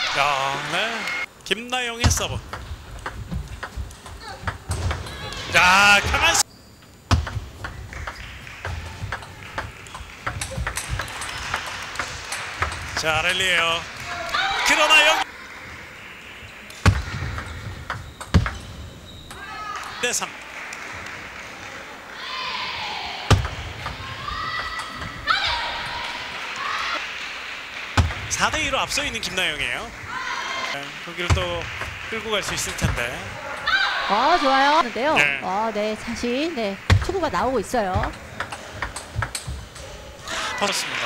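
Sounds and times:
table tennis ball clicking: 0:02.4 - 0:05.1, 0:06.9 - 0:13.4, 0:36.8 - 0:39.8
women shouting high-pitched: 0:33.6 - 0:34.6.

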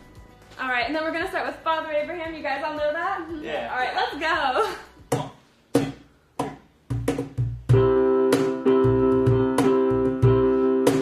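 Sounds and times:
cajon slaps: 0:05.0 - 0:11.0
electric keyboard chords: 0:07.6 - 0:11.0.

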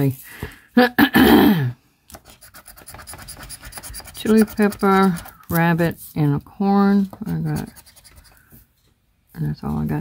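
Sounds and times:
man coughing: 0:00.8 - 0:01.8
man clearing his throat: 0:00.9 - 0:01.8.

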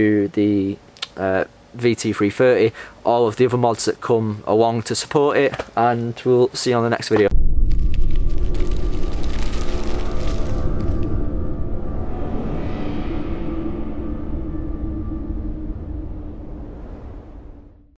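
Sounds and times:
deep cinematic boom with crackling: 0:07.3 - 0:17.9
low droning tone: 0:07.3 - 0:18.0.

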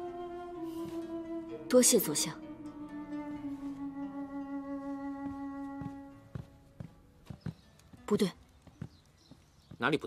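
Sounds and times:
background music: 0:00.0 - 0:10.0
footsteps on wooden floor: 0:04.8 - 0:10.0.

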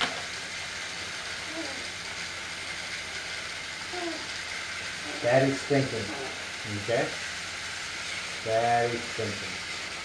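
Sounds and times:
toy trains rattling on track: 0:00.0 - 0:10.0.

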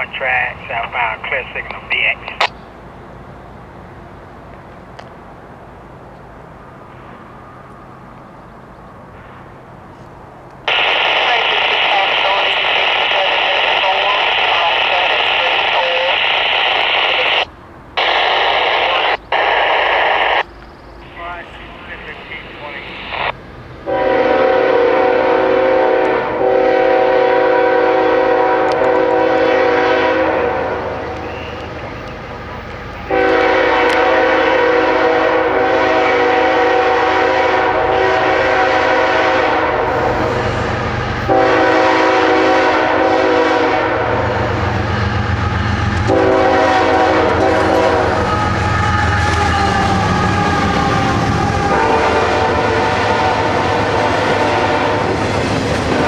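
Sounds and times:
scanner radio static hiss: 0:00.0 - 0:02.5, 0:10.7 - 0:23.4
locomotive horn long blasts: 0:23.8 - 0:31.2, 0:33.1 - 0:40.4, 0:41.2 - 0:55.2.

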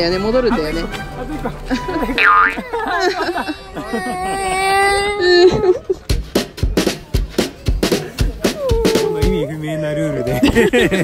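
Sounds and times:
background music: 0:00.0 - 0:03.5, 0:05.8 - 0:09.6.

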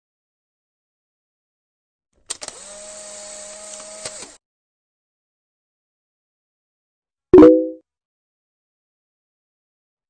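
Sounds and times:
small electric motor whirring: 0:02.3 - 0:04.4.

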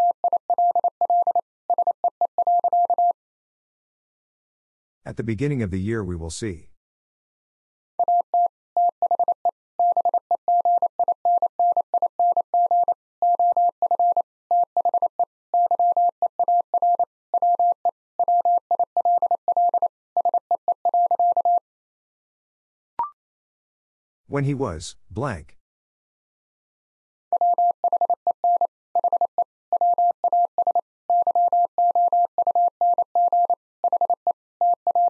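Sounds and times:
morse code beeps: 0:00.0 - 0:03.2, 0:08.0 - 0:21.6, 0:27.4 - 0:35.0.

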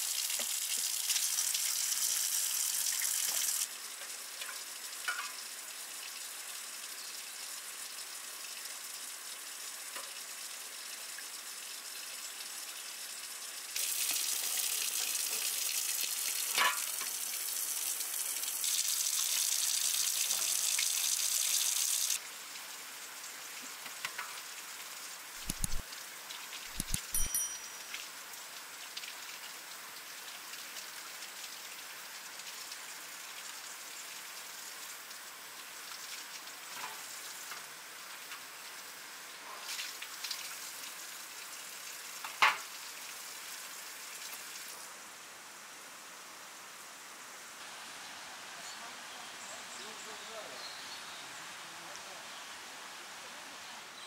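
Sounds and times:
water running from a tap: 0:00.0 - 0:39.0, 0:39.6 - 0:44.8
sharp click: 0:25.4 - 0:25.8, 0:26.7 - 0:27.4.

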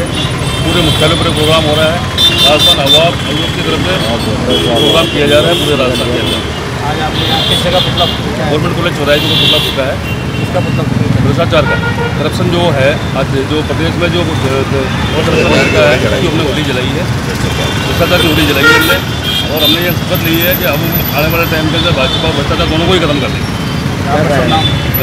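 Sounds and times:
vehicle horns: 0:00.0 - 0:08.4, 0:09.0 - 0:12.6, 0:14.2 - 0:25.0
road traffic noise: 0:00.0 - 0:25.0
man talking: 0:00.6 - 0:23.4, 0:24.0 - 0:24.8.

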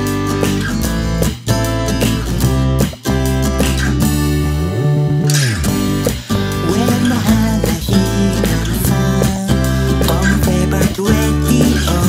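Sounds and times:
electric bass: 0:00.0 - 0:12.0
strummed acoustic guitar: 0:00.0 - 0:12.0
man singing: 0:06.5 - 0:12.0.

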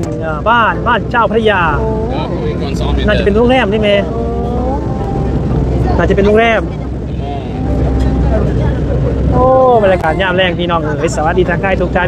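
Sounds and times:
boat engine rumble: 0:00.0 - 0:12.0
faint voices: 0:00.0 - 0:12.0.

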